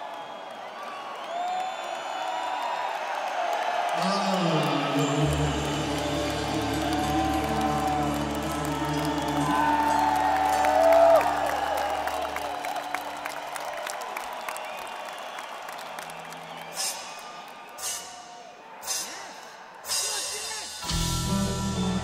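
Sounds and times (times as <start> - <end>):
crowd cheering and whooping: 0.0 - 19.5.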